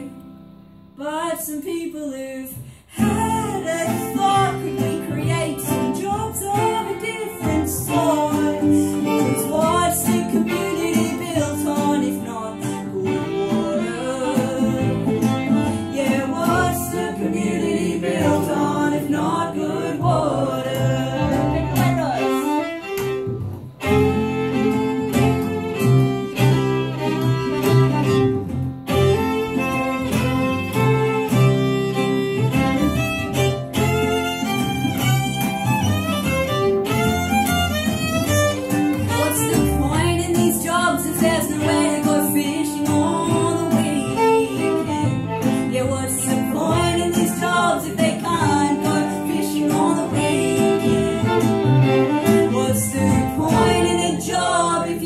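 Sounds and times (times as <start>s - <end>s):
cittern guitar: 0.0s - 55.0s
double bass: 0.0s - 55.0s
fiddle: 2.5s - 55.0s.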